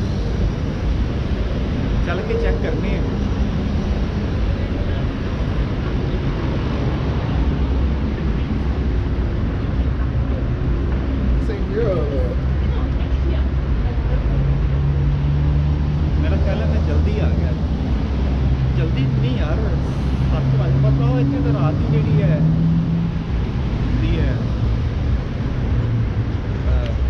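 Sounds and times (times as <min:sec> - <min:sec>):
heavy engine hum: 0:00.0 - 0:27.0
road traffic rumble: 0:00.0 - 0:27.0.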